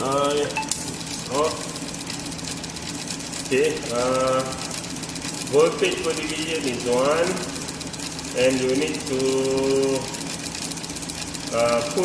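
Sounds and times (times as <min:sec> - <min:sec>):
ignition board ticking buzz: 0:00.0 - 0:12.0.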